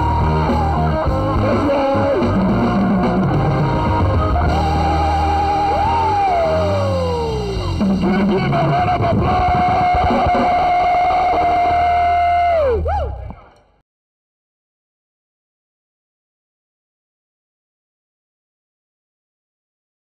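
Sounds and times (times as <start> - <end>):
electric guitar notes: 0.0 - 13.3
live band music: 0.0 - 13.5.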